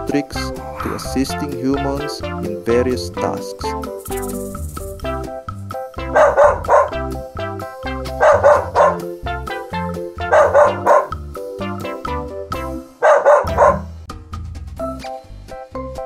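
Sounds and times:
light background music: 0.0s - 16.0s
dog barking: 6.0s - 7.1s, 8.1s - 9.1s, 10.2s - 11.2s, 13.0s - 14.0s.

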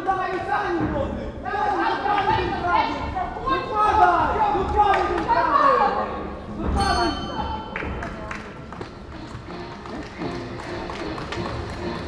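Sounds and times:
people shouting in echoing hall: 0.0s - 7.8s.

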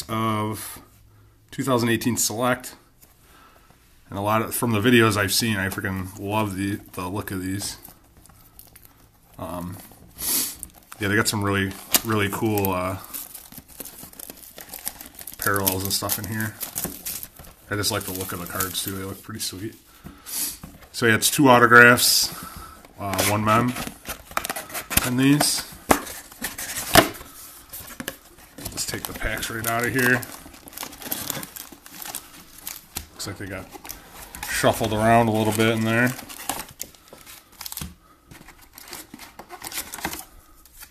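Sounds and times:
cardboard rustling: 4.2s - 40.9s
plastic wrapping crinkling: 4.2s - 40.9s.

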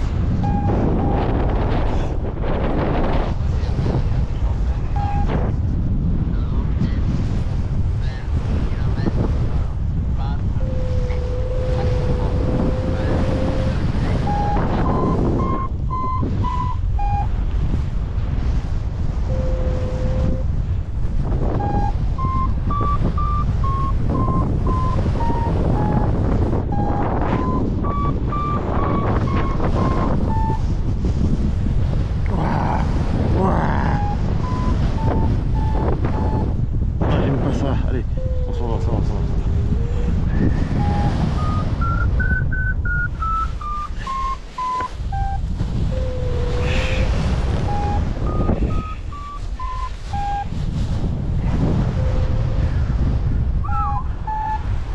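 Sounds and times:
long low steady tone: 0.0s - 2.0s, 4.8s - 5.6s, 10.4s - 17.9s, 19.0s - 31.6s, 32.2s - 37.0s, 38.1s - 54.9s
wind rushing over microphone: 0.0s - 54.9s
variometer beeping: 0.3s - 1.7s, 4.9s - 5.4s, 10.6s - 17.5s, 19.2s - 20.5s, 21.5s - 30.8s, 33.8s - 36.6s, 39.5s - 46.7s, 47.5s - 50.6s.

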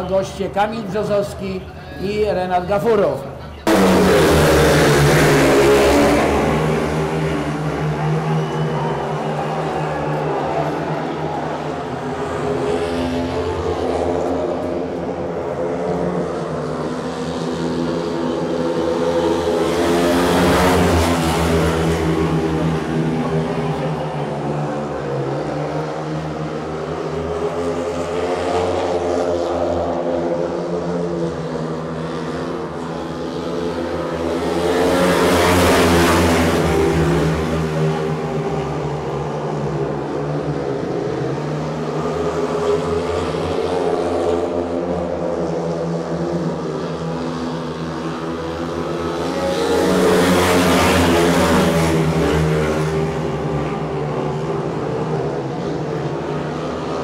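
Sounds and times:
motorcycles racing: 0.0s - 57.0s.

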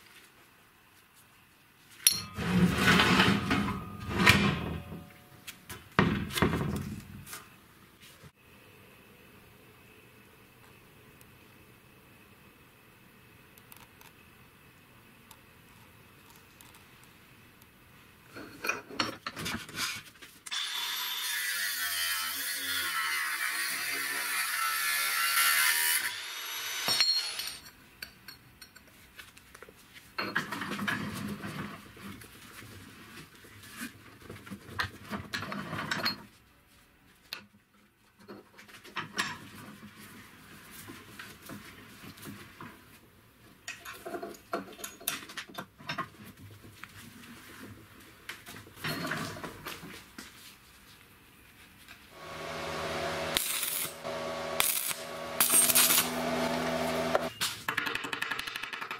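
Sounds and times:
abrasive grinding on steel pipe: 52.2s - 57.3s
rasping sawing noise: 52.2s - 57.3s.

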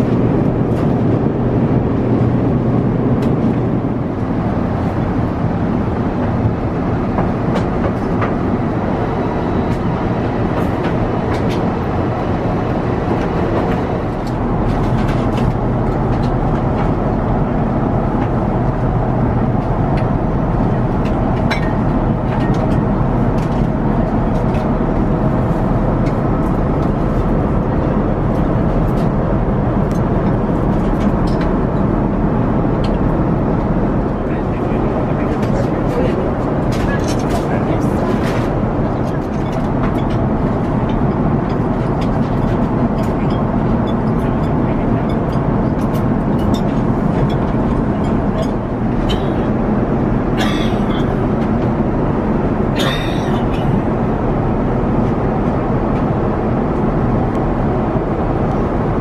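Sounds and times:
airflow rushing in aircraft cabin: 0.0s - 59.0s
engine hum: 0.0s - 59.0s.

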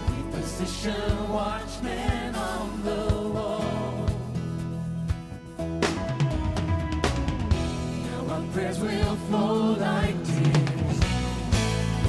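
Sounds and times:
worship band playing: 0.0s - 12.0s
person singing: 8.0s - 11.2s.

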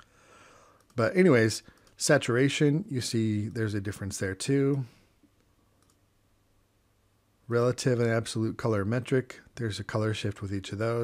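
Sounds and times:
computer mouse clicks: 0.8s - 1.0s, 1.7s - 2.0s, 4.7s - 6.0s.

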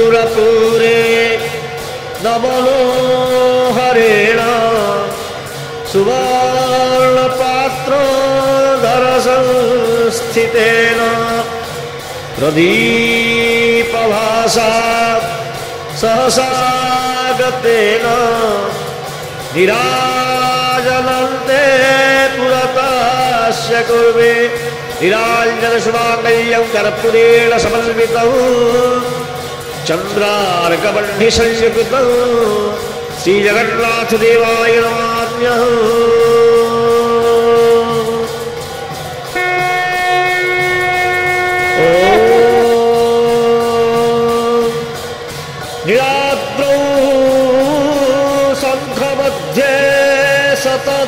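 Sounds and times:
conch shells blown: 39.4s - 43.6s
person chanting a long note: 39.4s - 43.6s.

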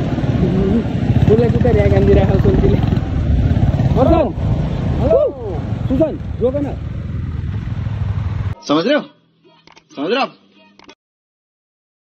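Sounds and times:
motorcycle engine rumbling: 0.0s - 8.6s.

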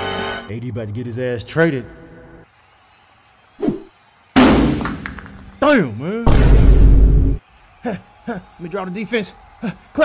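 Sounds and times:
loud bang: 6.3s - 7.4s.

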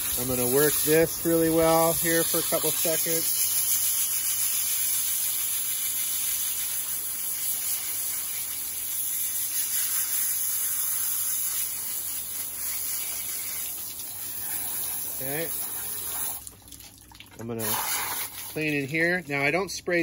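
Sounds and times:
hose nozzle spraying water: 0.0s - 19.6s.

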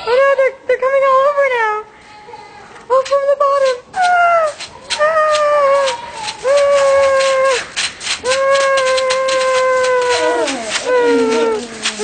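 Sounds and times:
high voice wailing: 4.0s - 12.0s
scratchy rubbing clicks: 4.4s - 12.0s.

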